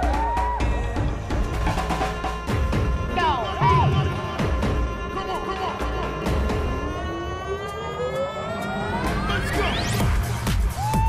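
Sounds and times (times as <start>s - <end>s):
synthesized riser sweeping upward: 1.9s - 10.6s
held high tone: 3.0s - 9.3s.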